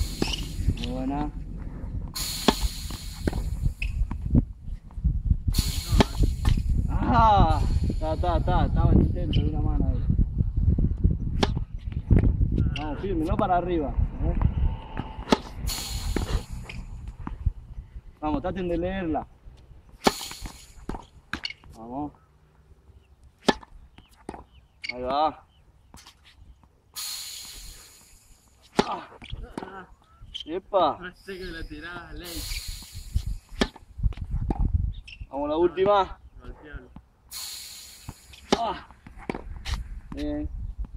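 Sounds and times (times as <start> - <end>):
tennis ball struck by racket: 0.0 - 0.9, 2.1 - 4.2, 6.0 - 6.6, 11.4 - 11.6, 14.9 - 17.4, 20.0 - 21.7, 23.4 - 24.5, 28.6 - 29.8, 33.5 - 33.9, 38.1 - 39.8
ball impact: 0.0 - 4.4, 11.4 - 12.3, 14.4 - 17.5, 20.0 - 21.8, 28.6 - 29.8
low rumble: 0.0 - 18.2.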